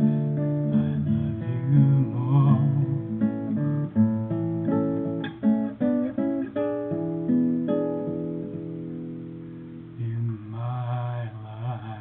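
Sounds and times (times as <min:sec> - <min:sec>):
acoustic guitar chord ringing: 0:00.0 - 0:12.0
man singing in a low voice: 0:00.2 - 0:03.3, 0:10.0 - 0:12.0.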